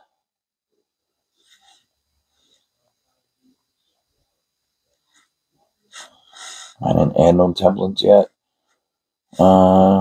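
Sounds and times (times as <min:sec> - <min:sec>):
man breathing through nose: 0:05.9 - 0:06.8
man speaking: 0:06.8 - 0:08.3, 0:09.4 - 0:10.0.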